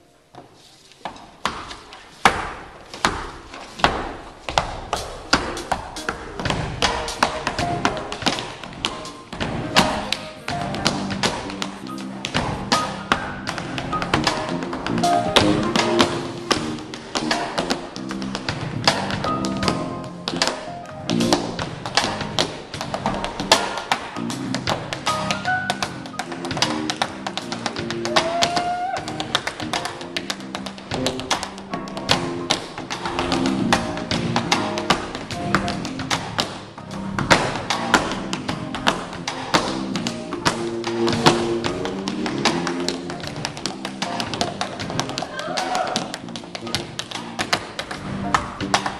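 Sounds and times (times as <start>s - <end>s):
tap shoes on wooden stage: 0.3s - 48.9s
drum kit: 3.8s - 48.9s.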